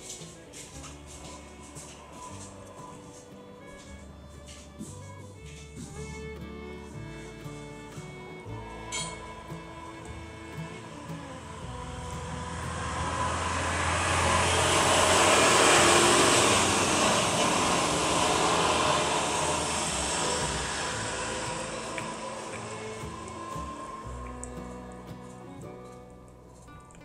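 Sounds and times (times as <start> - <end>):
airplane passing overhead: 0.0 - 27.0.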